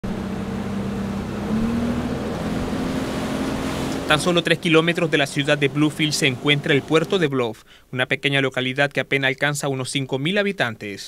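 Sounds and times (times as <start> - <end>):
boat engine running: 0.0 - 7.2.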